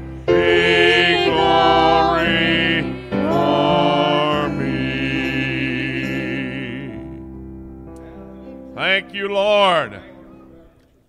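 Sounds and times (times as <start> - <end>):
voices singing worship music: 0.0 - 7.4
sustained chords: 0.0 - 10.6.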